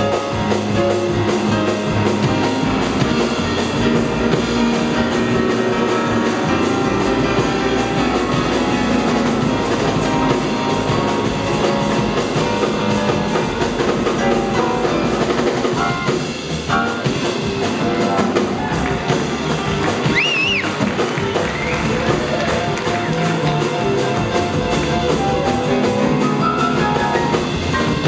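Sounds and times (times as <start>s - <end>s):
double bass: 0.0s - 28.0s
drum kit: 0.0s - 28.0s
grand piano: 0.0s - 28.0s.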